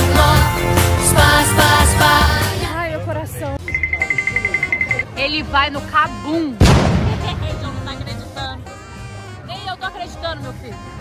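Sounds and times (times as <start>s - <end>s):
background music: 0.0s - 11.0s
rapid high electronic beeping: 3.6s - 5.0s.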